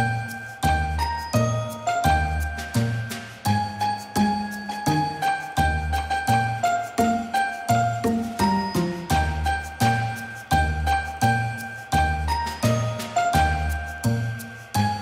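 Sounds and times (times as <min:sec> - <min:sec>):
chiming bell-like tune: 0:00.0 - 0:15.0.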